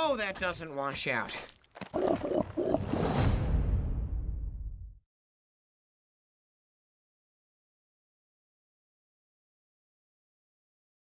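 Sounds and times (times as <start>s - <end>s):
dragon growling calls: 1.9s - 3.0s
hissing whoosh: 2.7s - 3.7s
trailer music: 2.8s - 5.0s
deep low boom: 3.3s - 5.0s.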